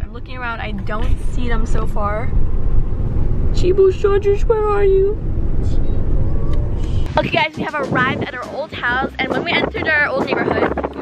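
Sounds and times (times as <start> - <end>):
road rumble inside moving car: 0.0 - 11.0.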